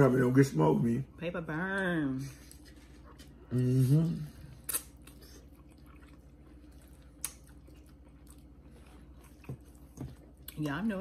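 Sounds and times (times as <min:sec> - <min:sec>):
low steady hum: 0:00.0 - 0:11.0
people chewing noodles: 0:02.2 - 0:10.9.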